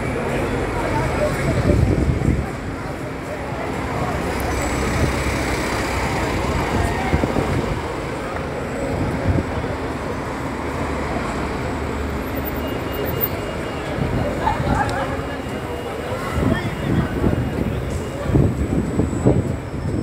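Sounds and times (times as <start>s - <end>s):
bus engines rumbling: 0.0s - 20.0s
city traffic noise: 0.0s - 20.0s.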